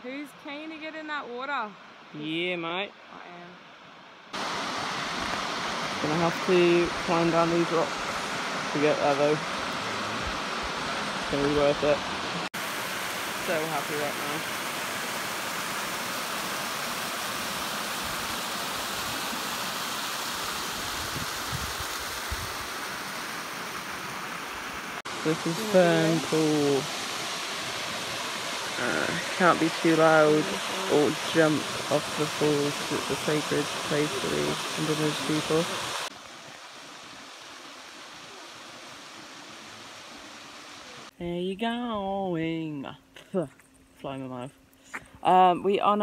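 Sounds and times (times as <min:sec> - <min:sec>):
waterfall rushing: 0:04.4 - 0:41.1.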